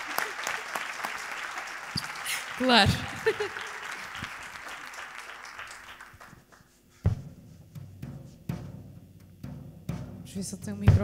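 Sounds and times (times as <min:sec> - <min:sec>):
audience applause: 0:00.0 - 0:06.7.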